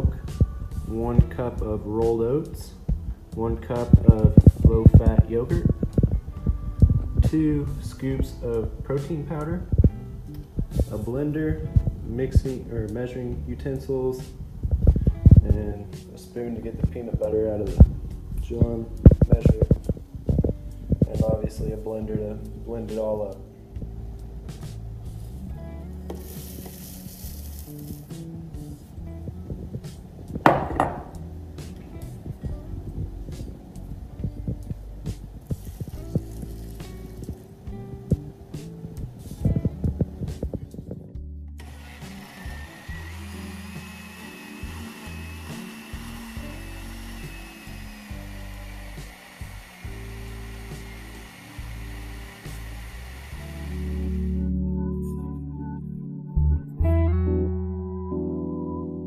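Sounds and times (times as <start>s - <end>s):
background music: 0.0s - 59.0s
blender whining: 41.6s - 54.4s.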